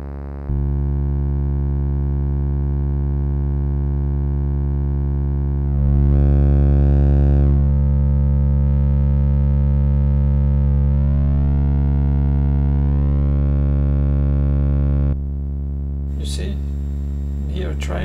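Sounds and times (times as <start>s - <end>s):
low synthesizer drone: 0.0s - 18.0s.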